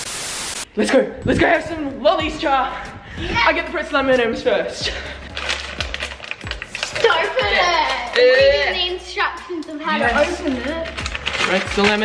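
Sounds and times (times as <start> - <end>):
plastic packet crinkling: 5.3 - 8.2, 10.1 - 12.0.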